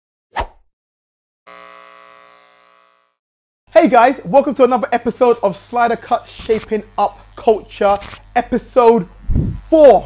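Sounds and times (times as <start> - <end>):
man speaking: 3.7 - 9.1, 9.7 - 10.0.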